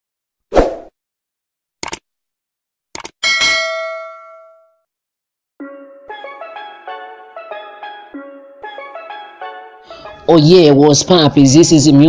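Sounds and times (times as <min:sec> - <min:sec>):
short clicks: 0:01.8 - 0:02.0, 0:03.0 - 0:03.2
bright metallic ding: 0:03.2 - 0:04.8
music: 0:05.6 - 0:12.0.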